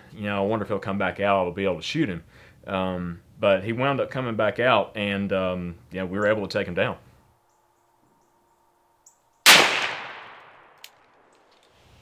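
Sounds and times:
revolver gunshot with echo: 9.5 - 10.8.

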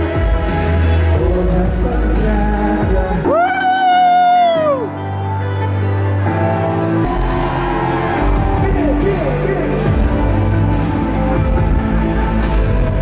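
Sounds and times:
live pop song with band: 0.0 - 6.4.

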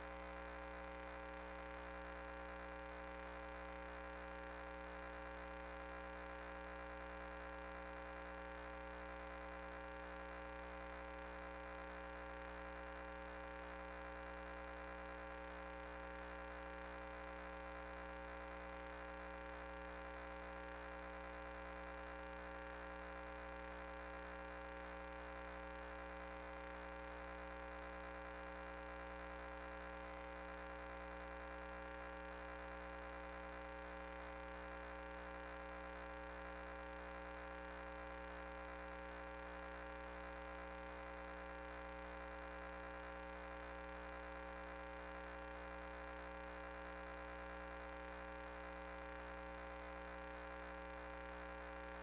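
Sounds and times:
steady electrical hum: 0.0 - 52.0.

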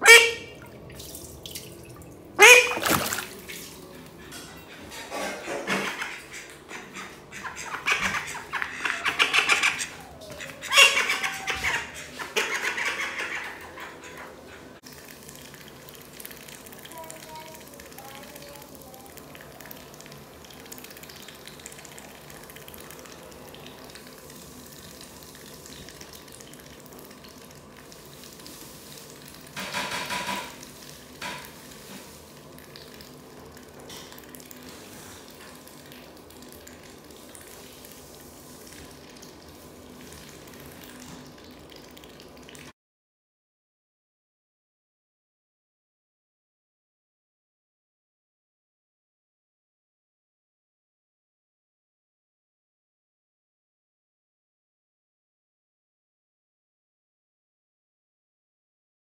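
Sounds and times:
duck slurping wet feed: 2.4 - 29.6.

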